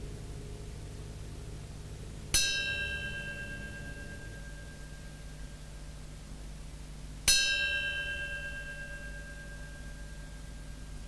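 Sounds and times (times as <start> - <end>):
low steady drone: 0.0 - 11.0
struck bell-like note: 2.3 - 5.6.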